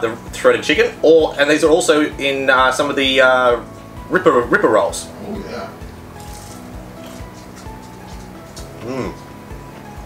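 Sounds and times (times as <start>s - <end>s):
soft background music: 0.0s - 10.0s
person chewing: 6.1s - 9.3s.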